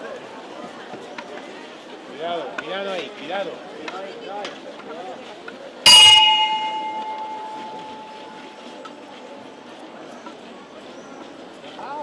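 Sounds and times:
bell strike ringing: 5.9s - 8.6s.

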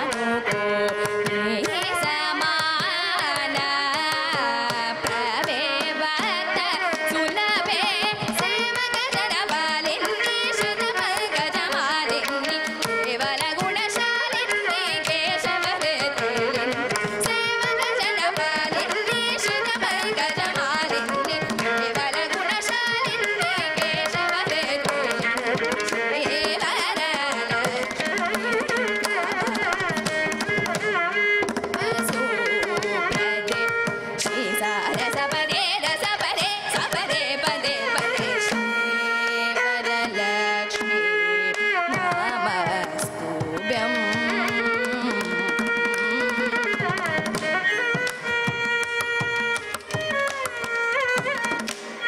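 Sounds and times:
girl singing with gliding pitch: 0.0s - 30.0s, 31.8s - 47.2s
violin melody: 0.0s - 52.0s.

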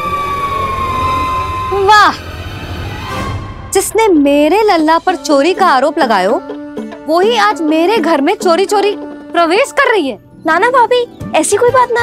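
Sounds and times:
held high note gliding down: 0.0s - 3.8s.

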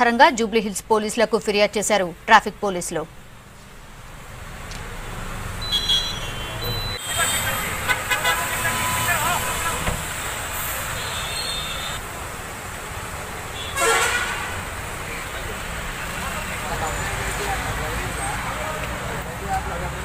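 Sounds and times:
car horns tooting: 5.6s - 12.0s, 13.6s - 14.6s.

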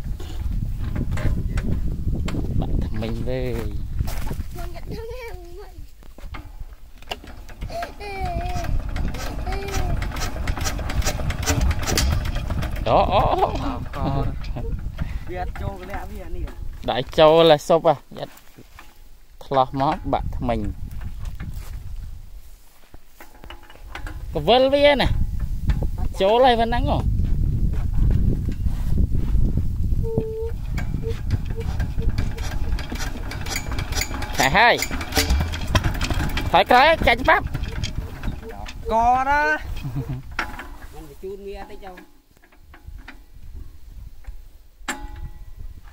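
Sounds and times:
diesel engine idling: 7.5s - 15.8s, 30.3s - 39.4s.

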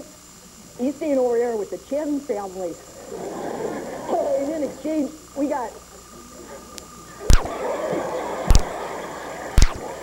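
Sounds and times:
studio audience laughing: 3.0s - 4.8s, 6.0s - 10.0s
sharp thumps: 7.2s - 7.6s, 8.5s - 8.8s, 9.6s - 9.9s.

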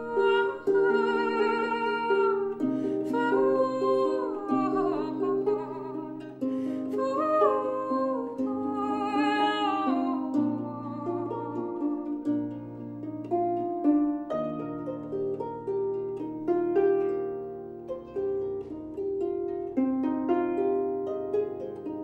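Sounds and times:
harp plucked notes: 0.0s - 22.0s.

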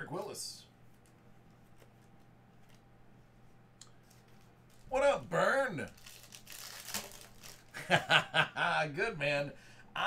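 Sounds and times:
foil wrapper crinkling: 4.0s - 7.9s.

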